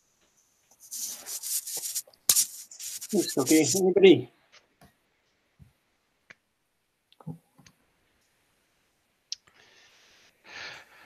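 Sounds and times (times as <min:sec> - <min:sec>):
person speaking softly: 0:03.1 - 0:04.2.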